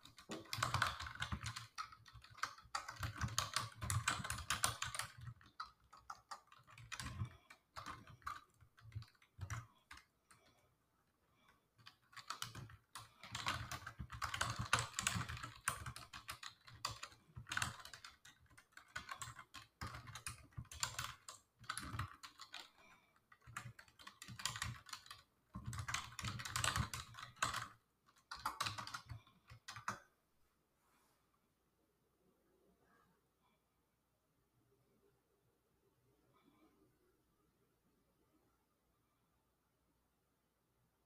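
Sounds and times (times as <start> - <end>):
computer keyboard typing: 0.0 - 10.6, 11.4 - 30.1.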